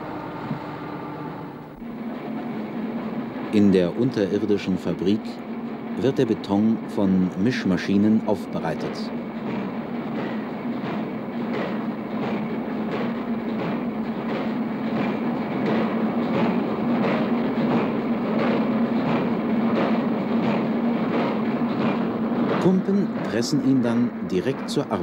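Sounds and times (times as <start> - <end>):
concrete mixer drone: 0.0 - 2.1
rhythmic mechanical clatter: 1.5 - 25.0.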